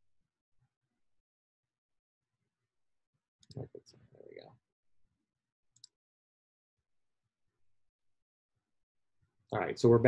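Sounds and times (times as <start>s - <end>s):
computer mouse clicks: 5.7s - 6.0s.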